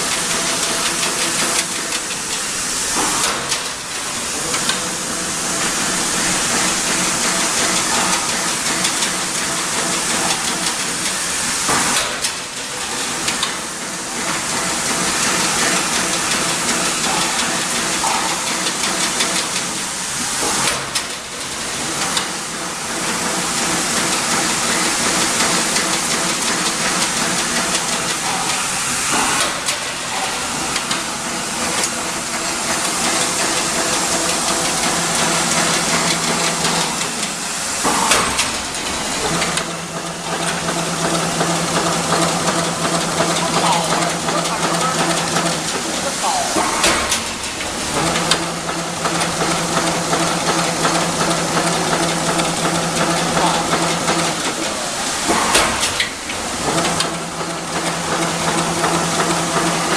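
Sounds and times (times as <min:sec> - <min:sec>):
fence weaving machine running: 0:00.0 - 0:59.9.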